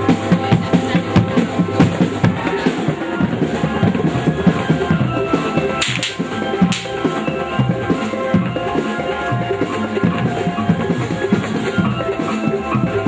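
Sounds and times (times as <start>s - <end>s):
traditional drum ensemble music: 0.0s - 13.0s.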